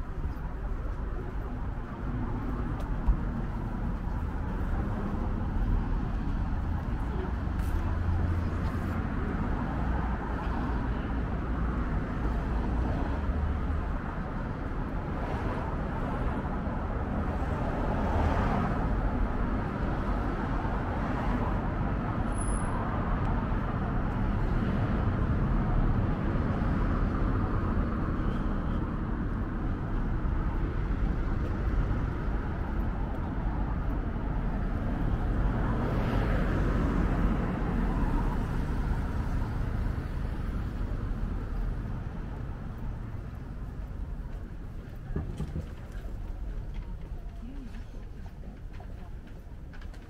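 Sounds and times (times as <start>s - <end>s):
cars passing: 0.0s - 50.0s
road traffic: 0.0s - 50.0s.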